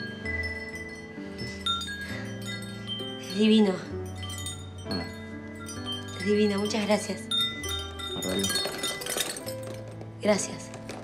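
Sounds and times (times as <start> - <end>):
metal chime with brass bell ringing: 0.0 - 9.8.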